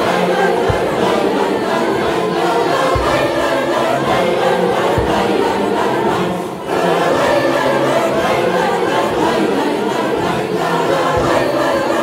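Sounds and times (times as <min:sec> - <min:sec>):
large choir singing: 0:00.0 - 0:12.0.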